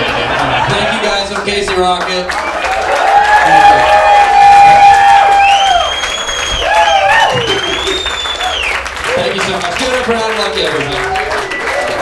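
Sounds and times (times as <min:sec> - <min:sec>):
audience applauding and cheering: 0:00.0 - 0:12.0
long held shout: 0:02.8 - 0:05.9, 0:06.6 - 0:07.8.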